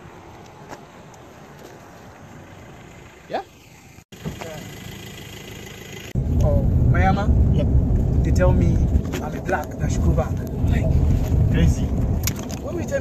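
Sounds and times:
truck engine idling: 2.0 - 7.4.

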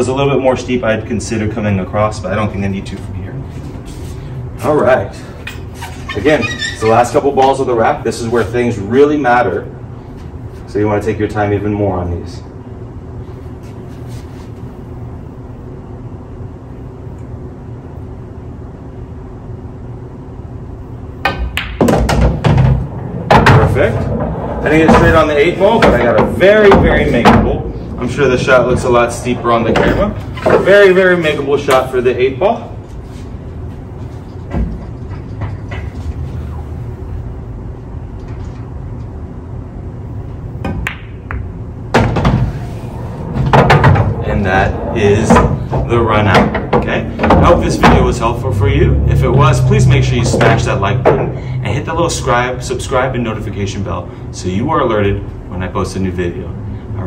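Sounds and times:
steady low hum: 0.0 - 57.0
pool balls knocking together: 21.2 - 27.7, 40.6 - 42.6
ball rolling through table: 21.6 - 30.7, 40.8 - 48.2.

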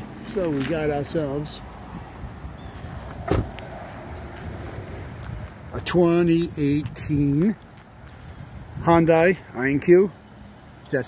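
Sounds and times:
outdoor background noise: 0.0 - 11.0
dull thump: 3.2 - 3.6.

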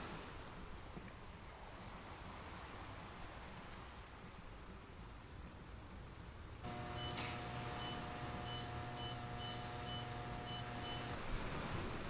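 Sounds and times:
electrical hum: 6.6 - 11.3
keypad beeps: 6.7 - 11.2.

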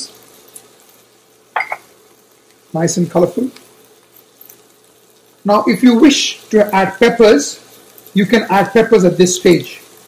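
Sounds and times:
faint sizzle: 0.0 - 10.0
utensils clinking against pan: 1.6 - 1.9.

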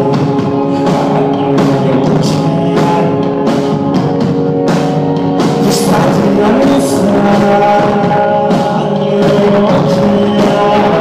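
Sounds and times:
drum-kit beat: 0.0 - 11.0
loud guitar chords: 0.0 - 11.0.

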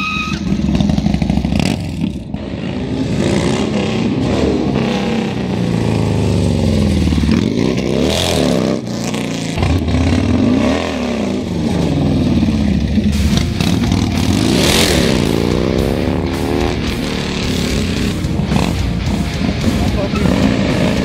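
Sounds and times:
motorcycle engine revving: 0.0 - 21.0.

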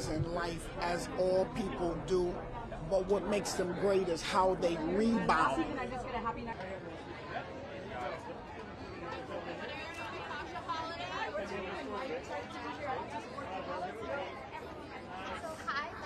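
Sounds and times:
chatter of many people: 0.0 - 16.0.

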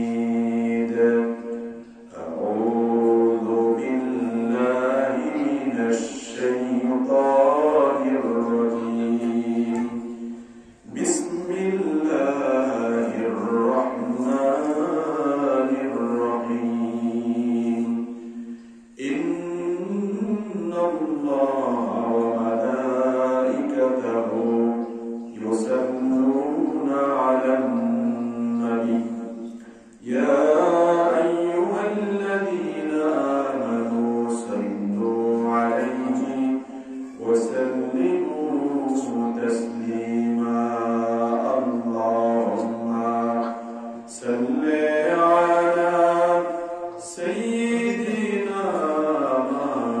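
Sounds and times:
man chanting into a microphone: 0.0 - 50.0.

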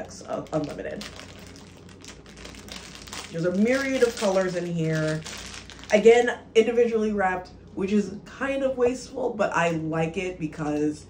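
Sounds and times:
plastic bag crinkling: 0.0 - 6.2.

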